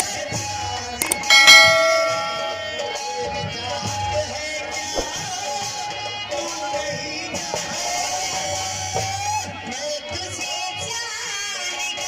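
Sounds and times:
bell ding: 1.0s - 3.2s.

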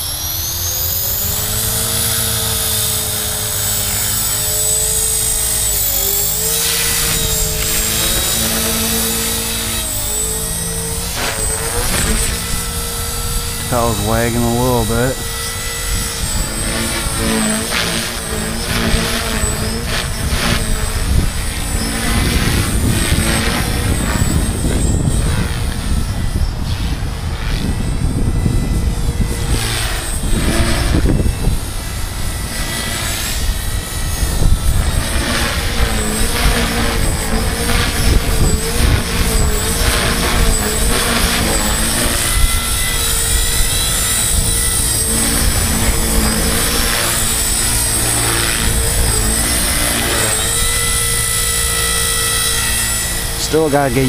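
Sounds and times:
model helicopter motor whine: 0.0s - 54.0s.

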